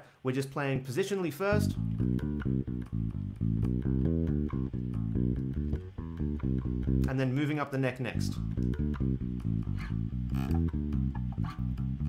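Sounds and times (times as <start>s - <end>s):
electric bass guitar notes: 1.5s - 12.0s.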